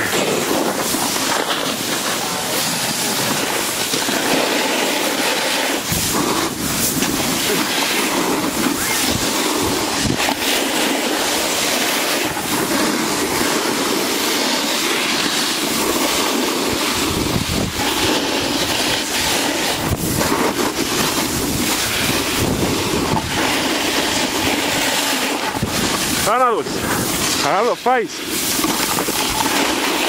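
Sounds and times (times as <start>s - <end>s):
wind on microphone: 0.0s - 27.4s
snowboard scraping over snow: 0.0s - 30.0s.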